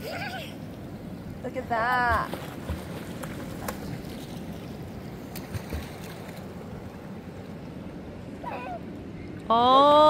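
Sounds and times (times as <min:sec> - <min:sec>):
water lapping at rocks: 0:00.7 - 0:09.5.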